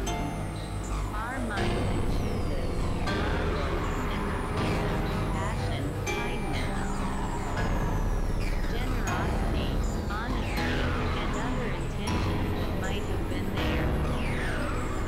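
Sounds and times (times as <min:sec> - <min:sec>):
downward pitched synth sweeps: 0:00.0 - 0:15.0
electronic synthesizer drones: 0:00.0 - 0:15.0
low rumble: 0:00.0 - 0:15.0.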